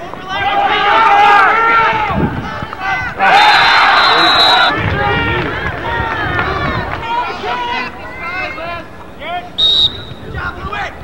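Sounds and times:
people shouting: 0.0 - 8.8.

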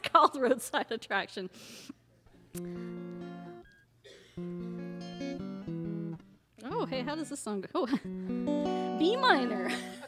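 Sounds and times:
acoustic guitar chords strummed: 2.6 - 3.8, 4.4 - 7.2.

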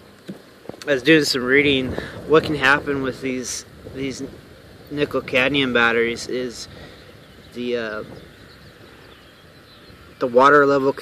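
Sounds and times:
faint distant bird chirps: 0.0 - 11.0
low steady hiss: 0.0 - 11.0.

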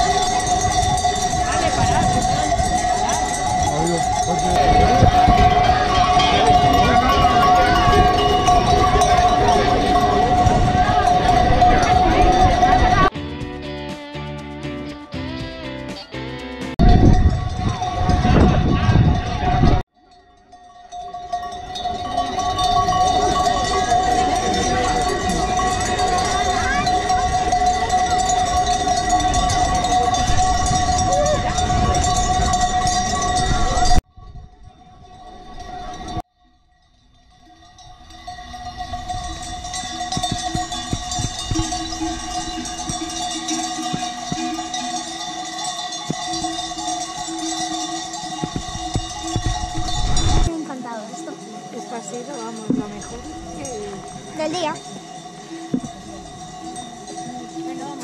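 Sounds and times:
sheep bells clanking: 0.0 - 13.2, 16.4 - 58.0.

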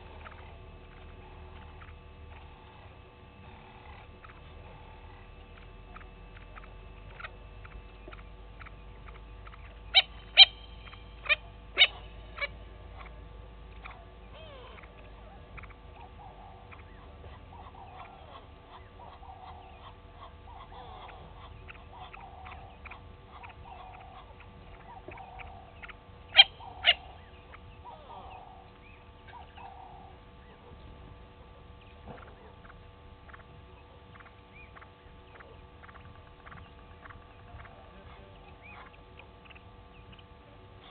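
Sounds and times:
faint bird chirps: 0.0 - 40.9
soft clucking calls: 0.0 - 40.9.

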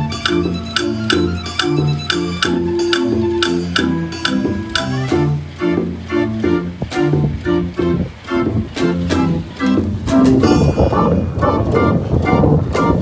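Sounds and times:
drums and woodblocks beating: 0.0 - 7.4, 8.3 - 13.0
street organ playing a tune: 0.0 - 13.0.

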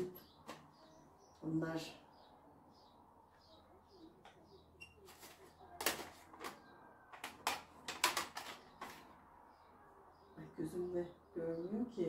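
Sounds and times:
faint bird chirps: 0.0 - 5.8
plastic cassette cases clacking: 5.2 - 9.0.

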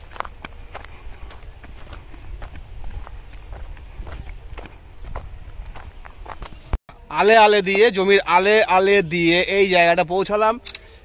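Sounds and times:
footsteps on dry soil: 0.0 - 6.8.

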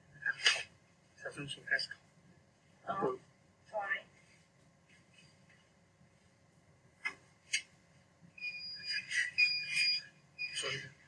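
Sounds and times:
rustling noise: 4.1 - 6.4.

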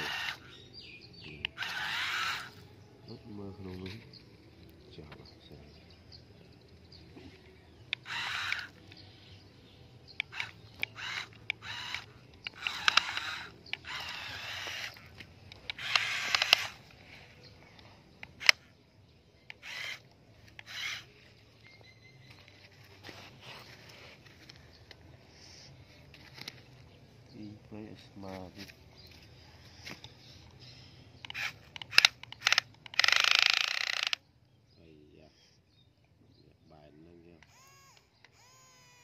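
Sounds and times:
toy truck motor whirring: 0.0 - 0.6, 1.4 - 2.7, 7.9 - 9.1, 10.1 - 17.3, 18.2 - 18.7, 19.5 - 21.4, 31.2 - 34.2, 37.4 - 39.0.

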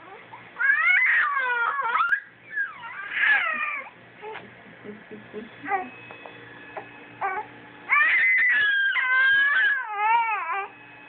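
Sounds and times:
baby squealing: 0.1 - 4.4, 7.2 - 10.7.

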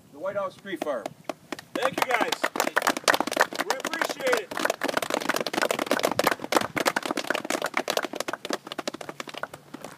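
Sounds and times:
people clapping: 0.8 - 9.9.

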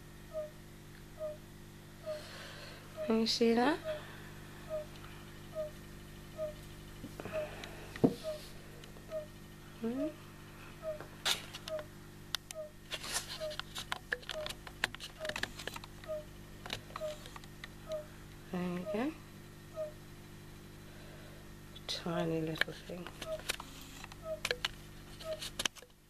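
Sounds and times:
frogs chirping: 0.2 - 10.1, 10.7 - 12.8, 13.4 - 14.6, 15.2 - 20.3, 23.0 - 25.4.

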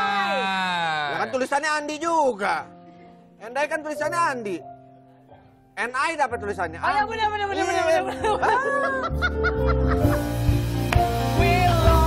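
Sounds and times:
music: 0.1 - 12.0
woman laughing: 7.5 - 10.4.

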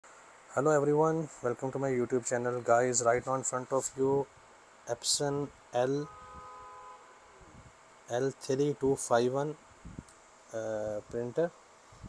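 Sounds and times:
faint multi-pitch whine: 0.0 - 12.0.

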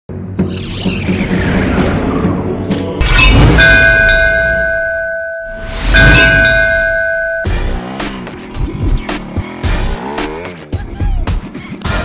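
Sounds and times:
bell-like metallic ring: 3.2 - 7.7.

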